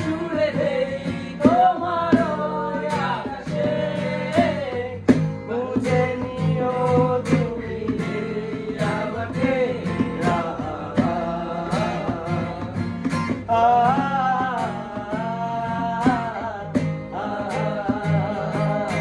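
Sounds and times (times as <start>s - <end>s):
acoustic guitar strumming: 0.0s - 19.0s
man singing: 0.0s - 19.0s.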